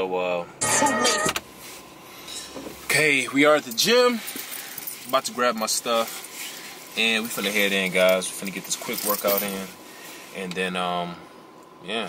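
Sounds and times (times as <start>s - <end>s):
car cabin hum: 0.0s - 11.8s.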